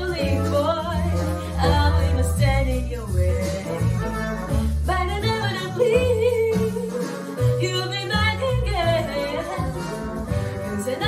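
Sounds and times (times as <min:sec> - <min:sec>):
instrumental accompaniment with bass: 0:00.0 - 0:11.0
woman singing a pop song: 0:00.0 - 0:11.0.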